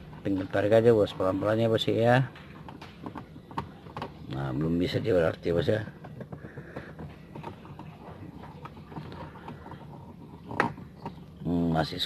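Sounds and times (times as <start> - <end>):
plastic panel clicks and knocks: 2.3 - 4.4.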